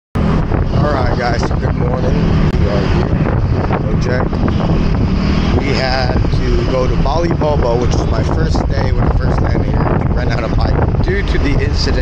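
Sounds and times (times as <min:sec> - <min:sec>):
wind rumble on microphone: 0:00.2 - 0:12.0
person speaking: 0:05.5 - 0:12.0.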